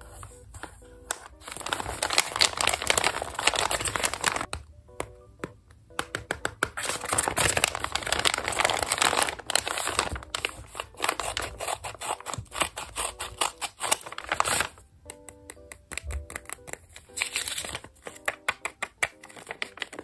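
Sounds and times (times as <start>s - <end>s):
soft background music: 0.0s - 20.0s
paper bag crinkling: 0.2s - 4.5s, 6.8s - 14.8s, 17.0s - 20.0s.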